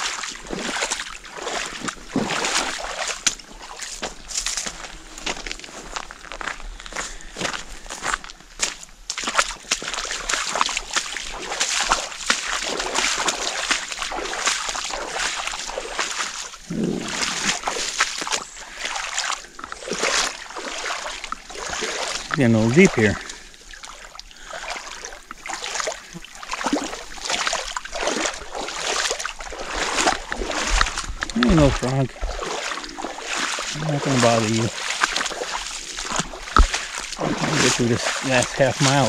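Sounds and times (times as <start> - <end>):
boots splashing through water: 0.0 - 39.0.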